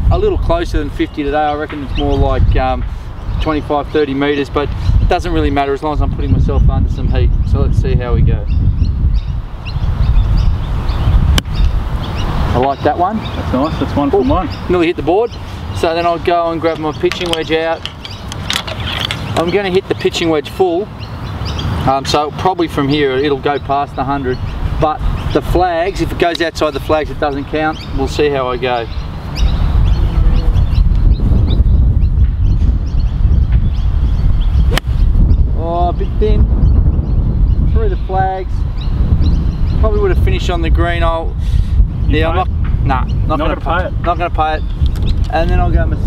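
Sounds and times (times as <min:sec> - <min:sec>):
birds chirping: 0:00.0 - 0:46.0
wind on microphone: 0:00.0 - 0:46.0
golf club striking ball: 0:34.7 - 0:35.2.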